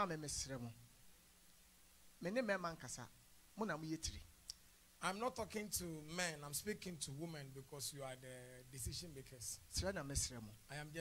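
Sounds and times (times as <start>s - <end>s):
man speaking over a microphone: 0.0s - 0.8s, 2.2s - 4.3s, 5.0s - 11.0s
faint click: 4.4s - 4.6s.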